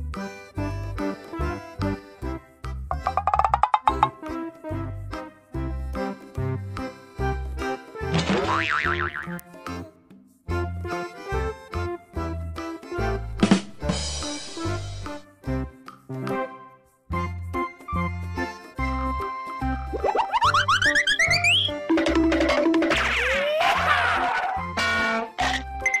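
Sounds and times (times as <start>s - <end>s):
upbeat background music: 0.0s - 26.0s
cartoon boing: 3.0s - 4.2s, 8.4s - 9.4s, 20.0s - 24.6s, 25.4s - 25.7s
rising cartoon sweeps: 19.9s - 21.8s.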